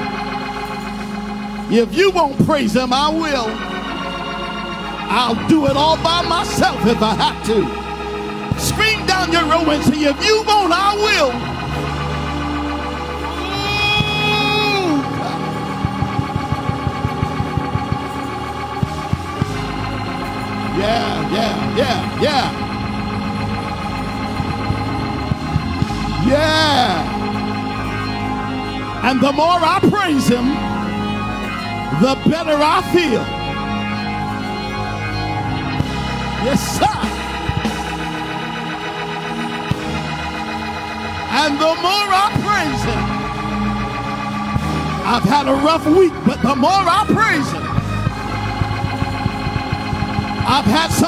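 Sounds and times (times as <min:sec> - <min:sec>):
church organ chord: 0:00.0 - 0:51.0
drums: 0:13.4 - 0:23.1, 0:35.8 - 0:41.4
short low thumps: 0:15.3 - 0:20.7.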